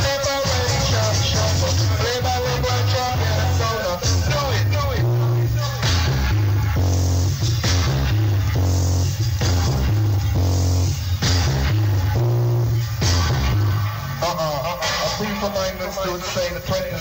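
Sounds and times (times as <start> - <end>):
deep heavy bassline: 0.0 - 16.4
reggae music: 0.0 - 17.0.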